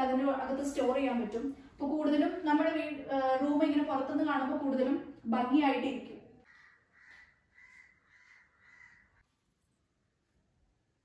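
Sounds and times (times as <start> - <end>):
bird calling faintly: 6.5 - 9.2.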